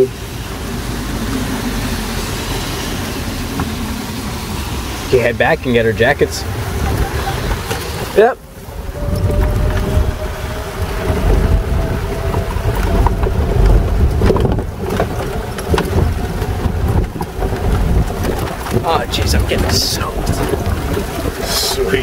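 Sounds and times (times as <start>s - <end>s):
rain: 0.0s - 22.0s
wind buffeting microphone: 0.0s - 22.0s.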